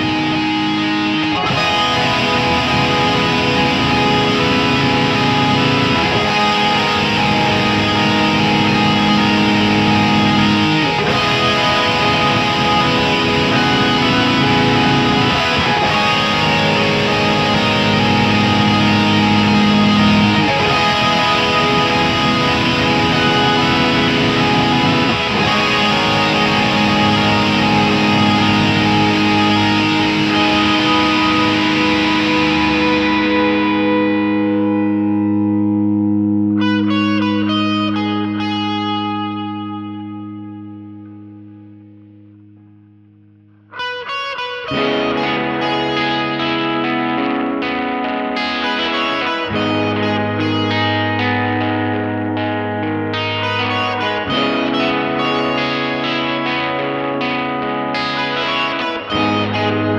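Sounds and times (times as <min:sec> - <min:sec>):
distorted electric guitar music: 0:00.0 - 0:59.9.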